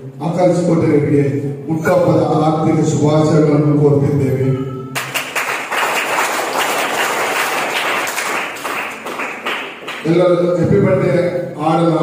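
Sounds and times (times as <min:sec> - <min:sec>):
audience applause: 0:05.0 - 0:10.0.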